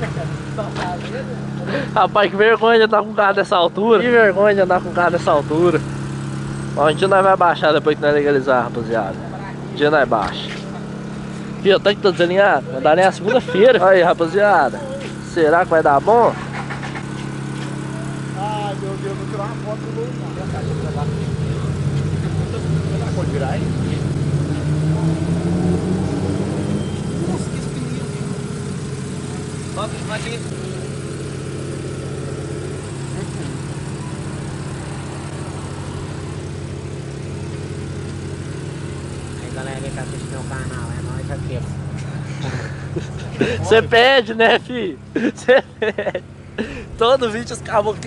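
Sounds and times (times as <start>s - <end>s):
car engine idling: 0.0s - 48.0s.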